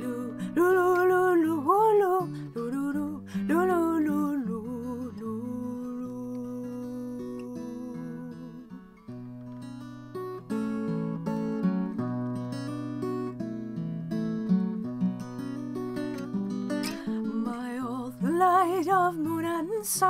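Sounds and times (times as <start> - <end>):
woman singing wordless notes: 0.0 - 8.8, 17.0 - 20.0
acoustic guitar picking: 0.0 - 20.0.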